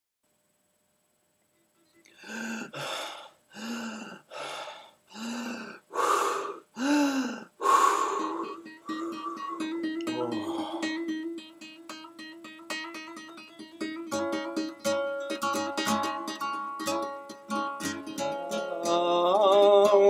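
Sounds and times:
breathy vocal tones: 0:02.0 - 0:11.2
acoustic guitar plucked: 0:07.8 - 0:20.0.

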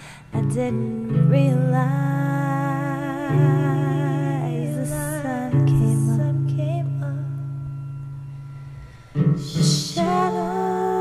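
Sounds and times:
breathy hiss: 0:00.0 - 0:00.4
woman singing with vibrato: 0:00.0 - 0:07.5, 0:09.4 - 0:11.0
low sustained accompaniment note: 0:00.0 - 0:11.0.

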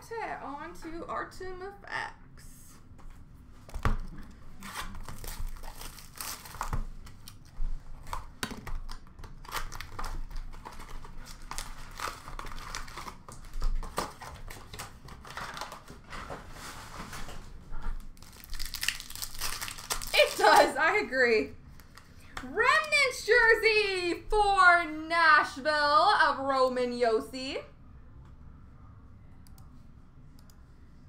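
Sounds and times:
foil wrappers tearing and crinkling: 0:04.6 - 0:07.4, 0:08.0 - 0:15.9, 0:18.1 - 0:20.8.

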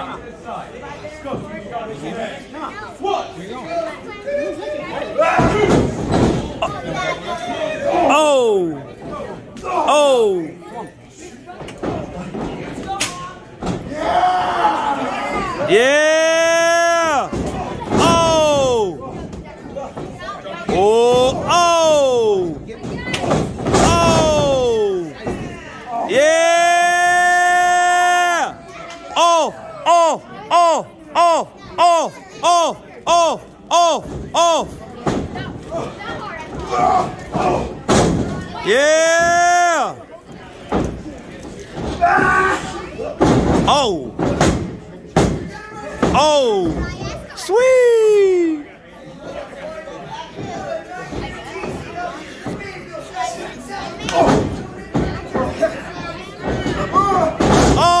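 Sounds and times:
crowd noise: 0:00.0 - 0:58.0.

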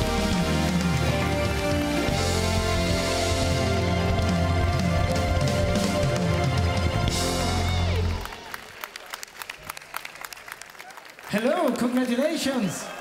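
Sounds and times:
live band music: 0:00.0 - 0:08.5
audience applause: 0:00.0 - 0:13.0.

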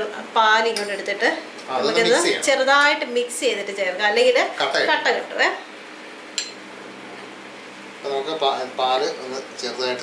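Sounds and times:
metal spoon clinking glass bowl: 0:06.4 - 0:06.6.

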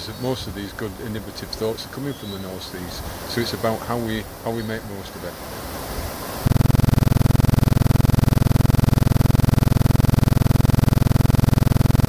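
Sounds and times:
harsh fluttering electronic buzz: 0:06.4 - 0:12.0.

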